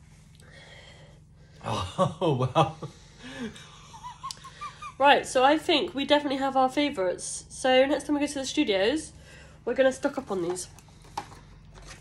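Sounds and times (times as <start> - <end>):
stifled wheezy laughter: 1.6 - 5.0.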